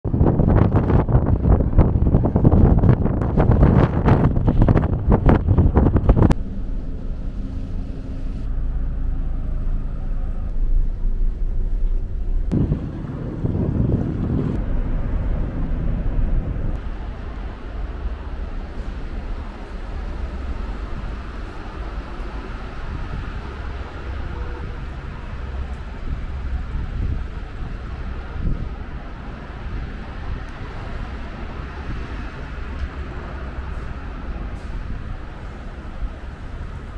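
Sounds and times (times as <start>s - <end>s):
wind buffeting microphone: 0.0s - 8.6s, 9.6s - 36.9s
rush of noise: 0.1s - 36.9s
ship engine hum: 0.1s - 36.9s.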